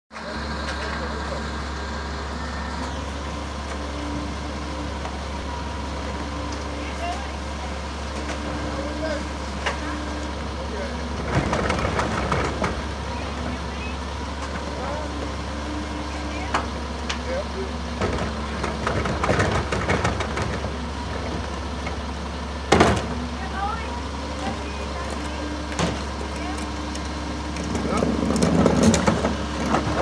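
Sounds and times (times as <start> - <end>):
garbage truck idling: 0.1 - 30.0.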